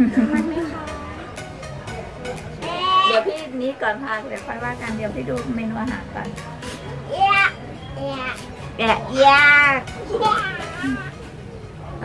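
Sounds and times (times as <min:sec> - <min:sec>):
background music: 0:00.0 - 0:12.0
young child speaking: 0:07.1 - 0:08.4.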